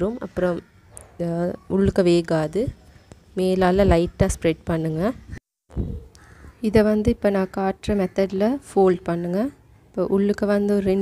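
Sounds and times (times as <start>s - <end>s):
woman speaking: 0.0s - 5.4s, 6.6s - 11.0s.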